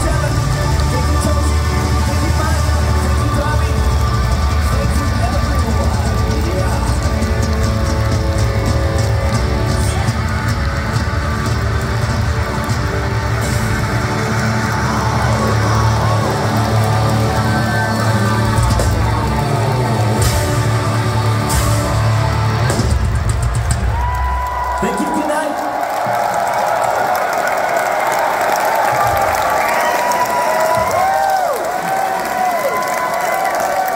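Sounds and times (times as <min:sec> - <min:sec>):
live rock band playing: 0:00.0 - 0:24.5.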